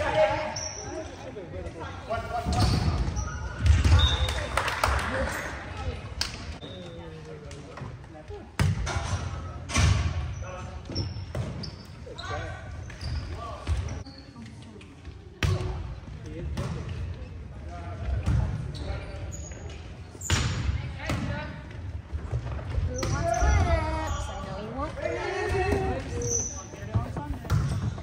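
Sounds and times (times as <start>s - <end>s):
players calling out and talking: 0.0s - 28.0s
sneakers squeaking on court: 2.5s - 4.5s, 10.2s - 14.6s, 18.2s - 21.3s, 22.3s - 28.0s.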